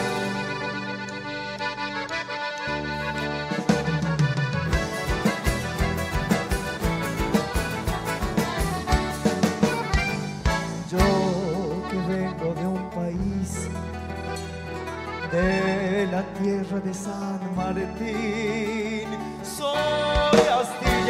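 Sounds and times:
accordion playing chords: 0.0 - 18.5, 19.2 - 21.0
bass line: 0.0 - 21.0
guitars: 0.0 - 21.0
drum kit dance beat: 3.6 - 11.1.

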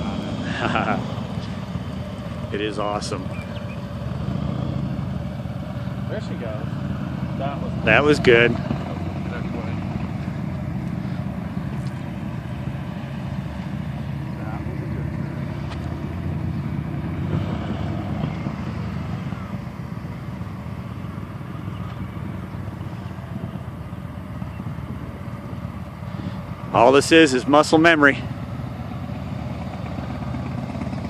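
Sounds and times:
motorcycle engine rumbling: 0.0 - 31.0.

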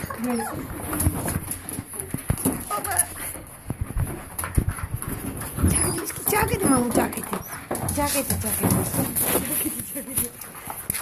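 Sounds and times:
puppies whining: 0.0 - 8.6
rustling: 0.0 - 11.0.

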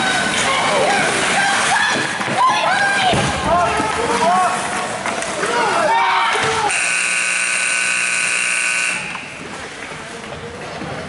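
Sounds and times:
scoreboard horn buzzing: 6.7 - 9.5.

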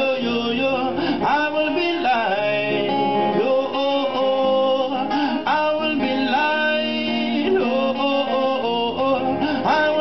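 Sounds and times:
acoustic guitar: 0.0 - 10.0
man singing into a microphone: 0.0 - 10.0.

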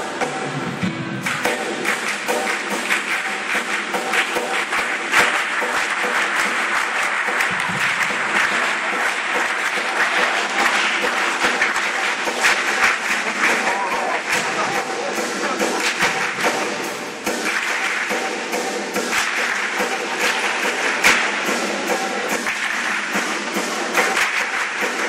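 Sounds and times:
crowd applauding: 1.4 - 25.0.

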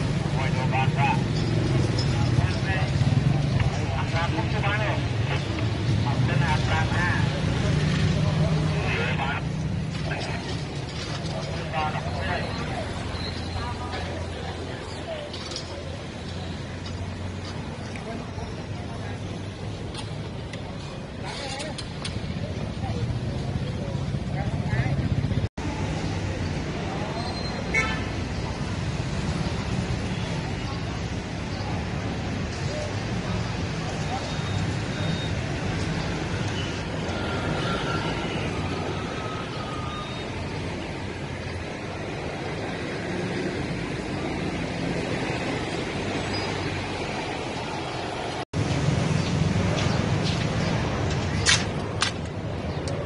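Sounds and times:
people talking: 0.0 - 27.4
street traffic drone: 0.0 - 53.0.

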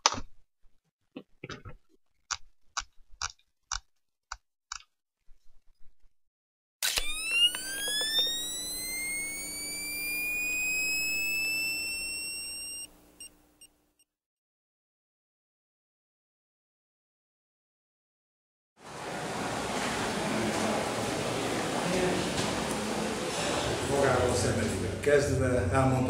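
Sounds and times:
whistle-like rising tone: 7.0 - 12.9.

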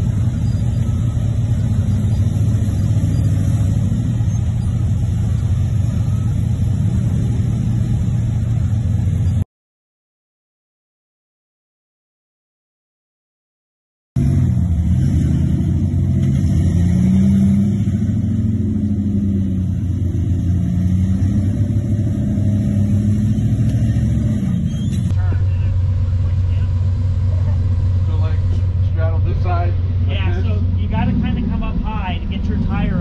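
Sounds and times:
off-road vehicle engine revving: 0.0 - 9.4, 14.2 - 33.0
people talking: 25.1 - 33.0.

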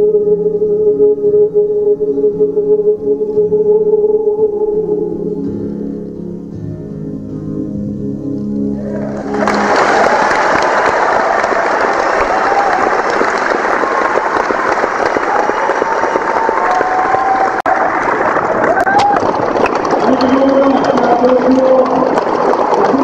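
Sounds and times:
audience applause: 8.8 - 23.0
people cheering: 8.8 - 23.0.

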